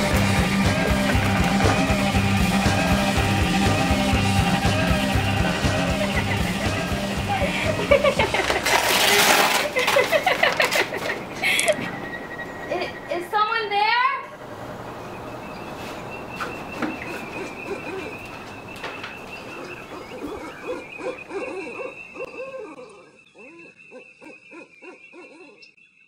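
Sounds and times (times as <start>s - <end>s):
owl hooting: 16.1s - 25.8s.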